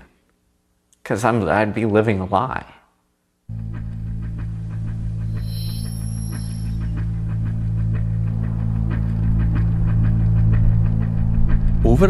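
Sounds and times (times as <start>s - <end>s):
low drone: 3.5s - 12.0s.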